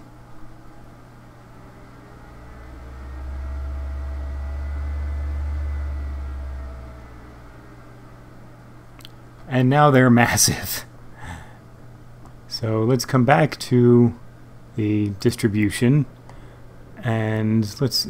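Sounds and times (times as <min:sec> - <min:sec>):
computer fan humming: 0:00.0 - 0:18.0.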